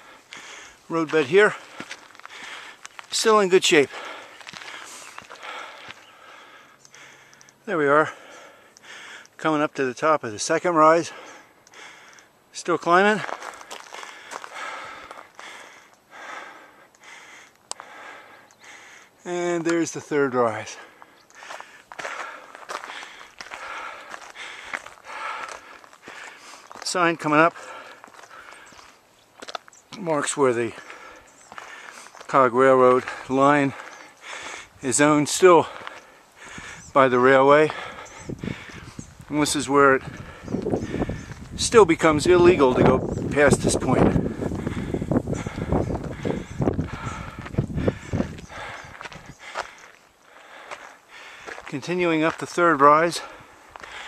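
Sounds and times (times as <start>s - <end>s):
footsteps on wooden steps: 0.0s - 3.2s, 4.0s - 7.1s, 21.0s - 30.1s, 30.8s - 32.4s, 44.2s - 52.5s, 53.2s - 54.0s.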